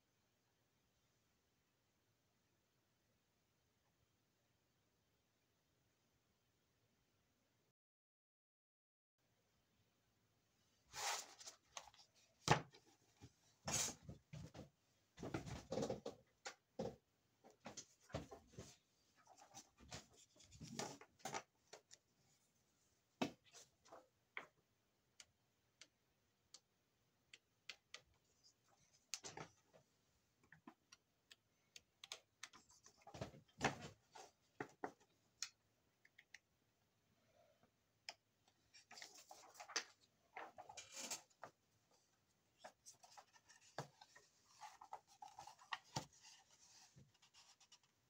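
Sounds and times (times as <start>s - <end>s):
faint paper rustling: 38.6s - 48.0s.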